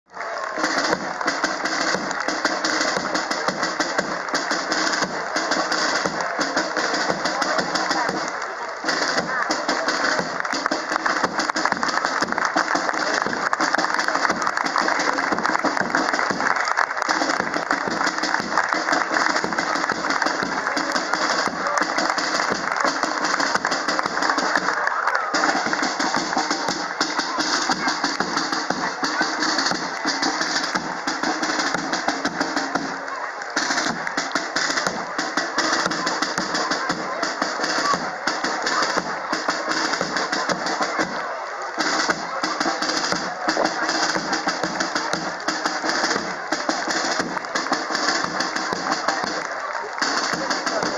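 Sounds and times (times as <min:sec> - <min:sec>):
crowd chatter: 0:00.0 - 0:50.9
drums beating: 0:00.1 - 0:50.9
marching band playing: 0:00.1 - 0:50.9.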